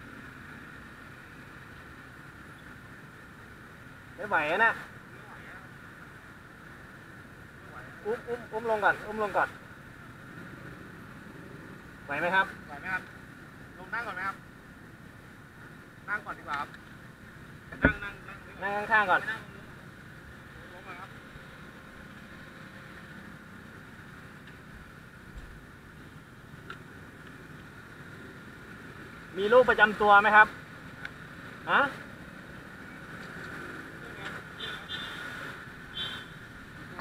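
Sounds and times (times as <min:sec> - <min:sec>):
idling scooters and traffic engines: 0:00.0 - 0:37.0.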